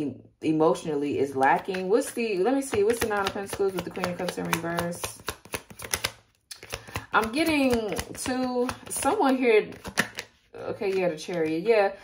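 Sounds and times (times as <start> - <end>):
cards shuffled by hand: 2.7 - 11.6.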